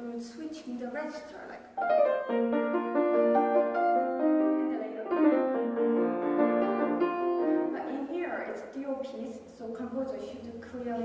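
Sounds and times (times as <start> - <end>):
grand piano playing: 1.8 - 8.2.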